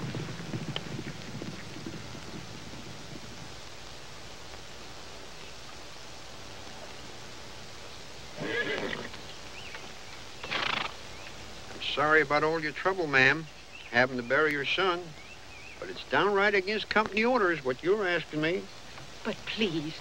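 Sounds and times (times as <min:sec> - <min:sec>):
steady background hiss: 0:00.0 - 0:20.0
horse whinnying: 0:08.4 - 0:09.2, 0:10.4 - 0:11.0.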